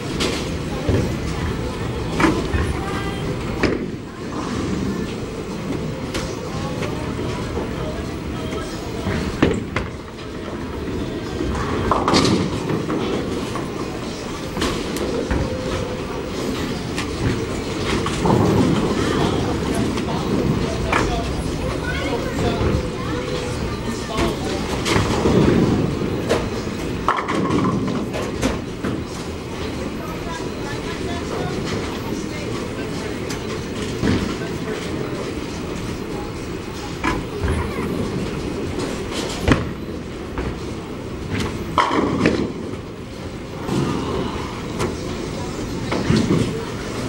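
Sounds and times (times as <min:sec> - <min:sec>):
bowling balls rolling on wooden lanes: 0:00.0 - 0:29.9.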